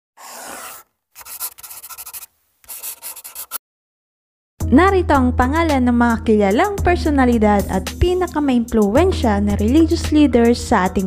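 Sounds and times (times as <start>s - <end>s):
chalk scratching on blackboard: 0.2s - 3.6s.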